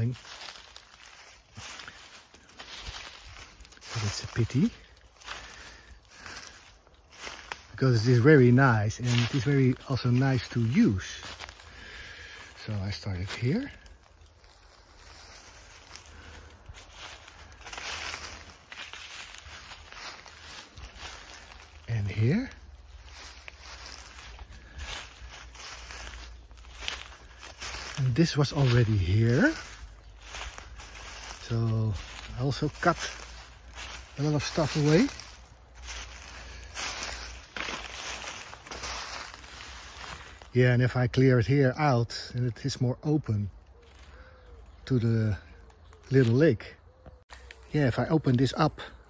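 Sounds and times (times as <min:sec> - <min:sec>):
footsteps on dry leaves: 0:00.0 - 0:49.0.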